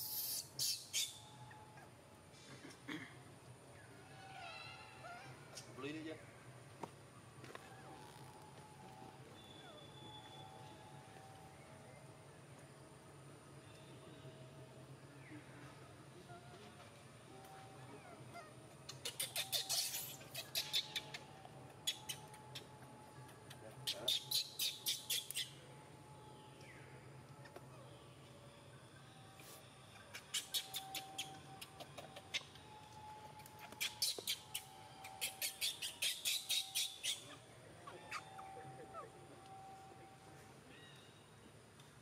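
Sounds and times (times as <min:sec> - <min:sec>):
baby monkey squeaking: 0:00.0 - 0:01.9, 0:18.0 - 0:25.6, 0:30.1 - 0:32.7, 0:33.5 - 0:39.1
faint distant calls: 0:00.0 - 0:41.5
faint high-pitched tone: 0:07.7 - 0:12.6, 0:13.5 - 0:18.2, 0:25.6 - 0:29.9, 0:32.5 - 0:33.8, 0:37.3 - 0:41.5.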